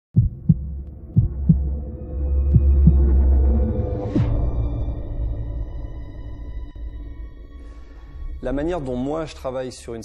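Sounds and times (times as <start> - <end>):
heartbeat thumps: 0.1 - 1.8, 2.5 - 3.2
low drone: 0.6 - 8.6.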